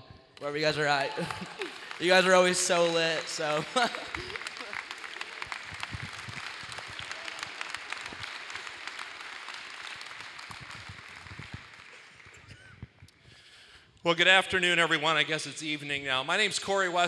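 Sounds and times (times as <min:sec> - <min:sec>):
audience applauding: 0:00.4 - 0:13.0.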